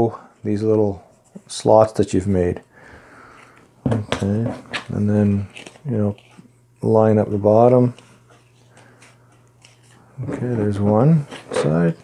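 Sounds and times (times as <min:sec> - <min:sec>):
steady low hum: 0:00.0 - 0:12.0
cardboard and tape rustling: 0:07.8 - 0:12.0.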